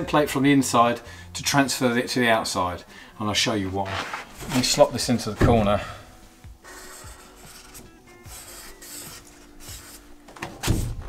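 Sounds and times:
marker scratching on cardboard: 6.7 - 10.1.

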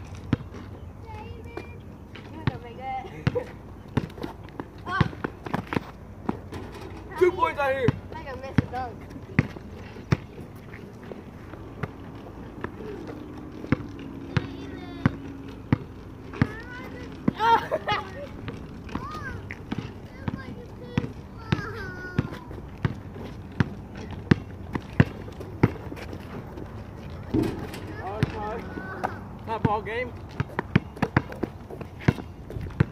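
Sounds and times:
basketball bouncing on asphalt: 0.1 - 32.9
players laughing: 17.4 - 18.4
players shouting: 27.3 - 29.9.

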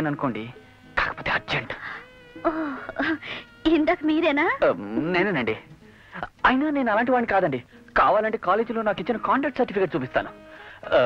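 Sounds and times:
film dialogue: 0.0 - 11.0.

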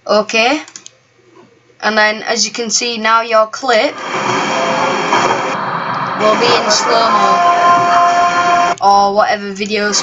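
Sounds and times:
indoor hall noise: 3.9 - 8.8.

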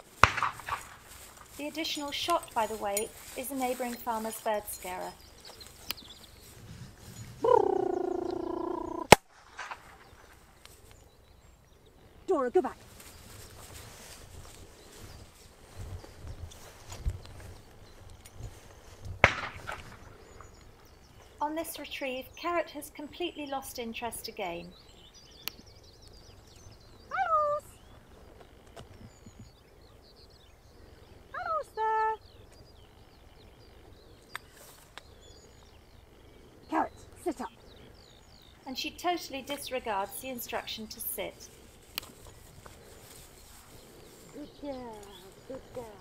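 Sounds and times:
sharp pistol shot: 0.2 - 1.0, 19.2 - 20.0
songbird twittering: 1.6 - 9.1, 19.8 - 46.0.

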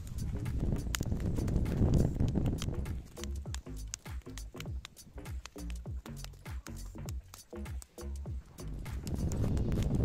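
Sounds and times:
background music with clip-clop beat: 0.0 - 10.0.

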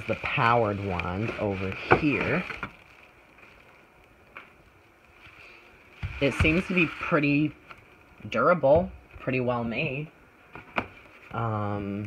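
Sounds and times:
bubble wrap handling noise: 0.0 - 12.0.

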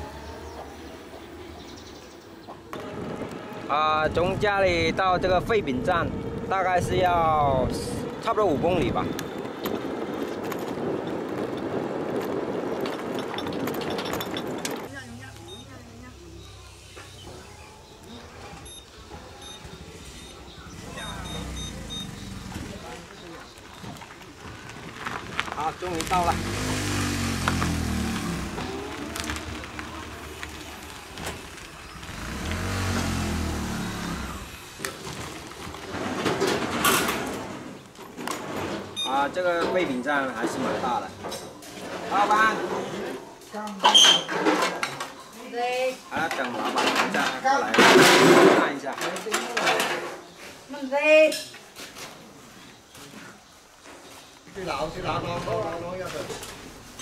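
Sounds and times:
road noise: 0.0 - 43.6, 44.3 - 57.0
open-air background: 0.0 - 57.0
wind rushing over microphone: 2.8 - 14.9
knocks and clatter: 9.1 - 14.9, 34.8 - 38.9, 46.2 - 50.2
vehicle engine passing: 19.4 - 23.3, 26.0 - 35.5.

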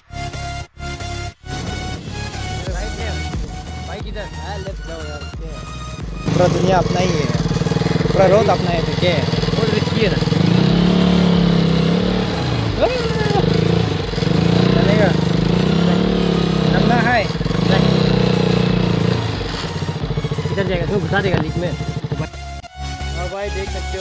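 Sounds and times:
motorcycle engine revving: 1.3 - 24.0.

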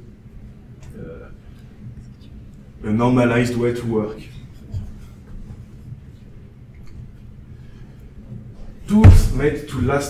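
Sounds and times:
steady low hum: 0.0 - 10.0
soft low thump: 9.0 - 9.4.

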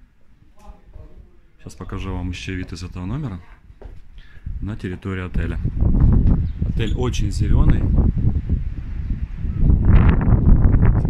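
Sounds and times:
wind buffeting microphone: 1.8 - 11.0.

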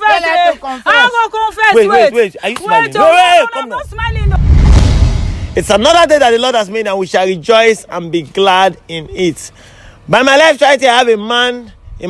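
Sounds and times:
deep rumbling whoosh: 3.8 - 6.3.

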